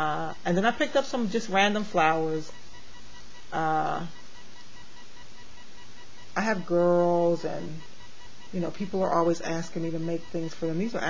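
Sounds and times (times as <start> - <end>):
background hiss: 0.0 - 11.0
faint high-pitched whine: 0.0 - 11.0.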